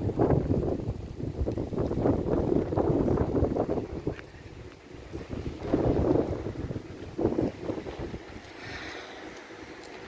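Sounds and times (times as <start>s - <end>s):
wind gusting across microphone: 0.0s - 10.0s.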